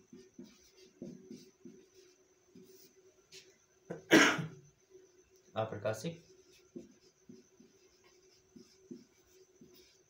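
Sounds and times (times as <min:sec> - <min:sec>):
marker writing on whiteboard: 0:00.0 - 0:04.0, 0:05.9 - 0:10.0
man coughing: 0:03.9 - 0:04.6.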